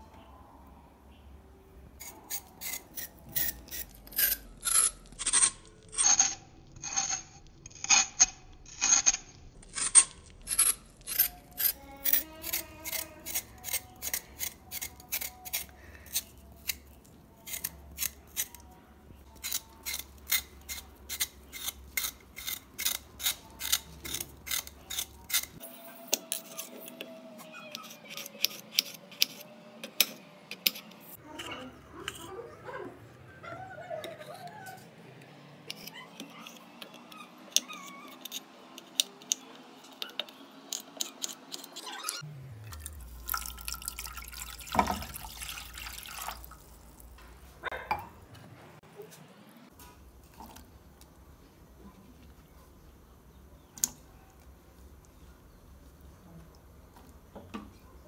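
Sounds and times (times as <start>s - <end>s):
peeler scraping potato skin: 2.0s - 32.3s, 35.6s - 42.2s.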